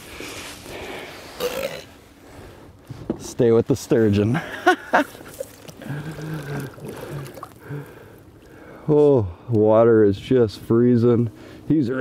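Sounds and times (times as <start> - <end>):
man grunting with effort: 5.8 - 7.9.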